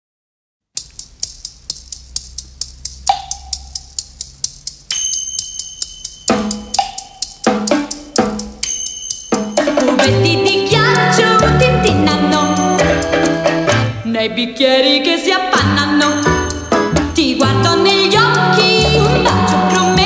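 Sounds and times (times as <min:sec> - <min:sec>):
drum kit beat: 0:00.8 - 0:14.0, 0:15.6 - 0:20.0
bass and chords: 0:00.8 - 0:14.2, 0:15.5 - 0:20.0
sustained high tones: 0:04.9 - 0:13.8.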